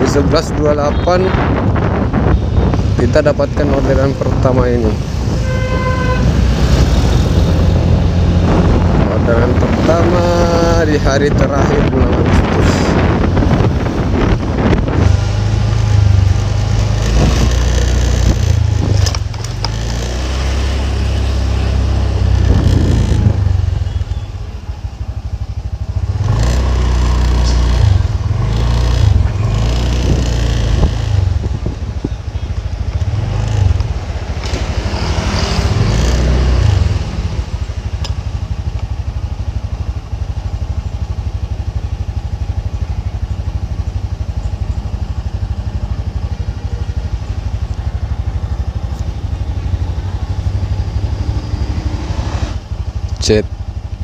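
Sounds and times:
motorcycle engine: 0.0 - 54.0
road noise: 0.0 - 54.0.

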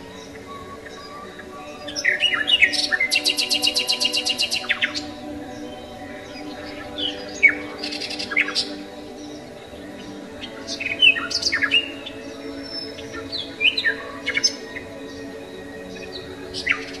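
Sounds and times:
bird chirps and tweets: 0.0 - 17.0
soft musical drone: 0.0 - 17.0.

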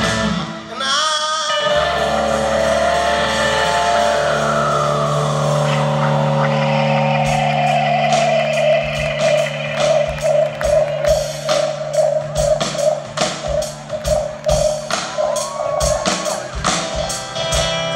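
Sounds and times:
guitar and bass chords: 0.0 - 0.9, 1.5 - 15.2, 16.0 - 17.9
drums steady beat: 1.7 - 17.9.

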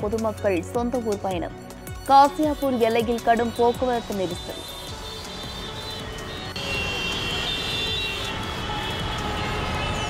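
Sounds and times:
traffic rumble: 3.1 - 10.0.

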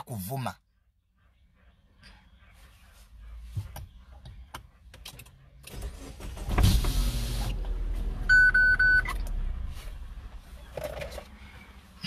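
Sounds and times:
car engine starting and idling: 4.2 - 12.0
dashboard warning chime: 8.3 - 9.2.

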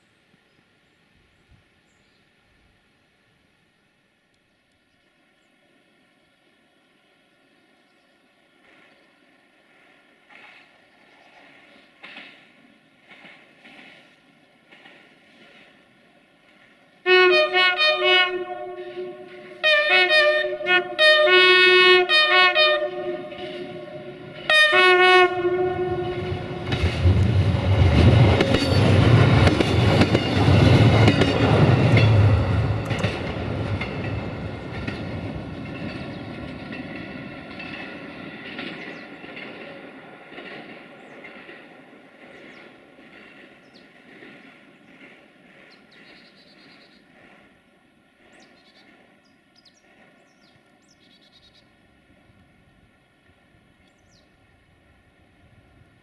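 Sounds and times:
railcar engine passing: 5.1 - 56.0
wheels clicking over rail joints: 9.7 - 17.0, 26.2 - 47.5
train horn blasts: 17.1 - 27.3.

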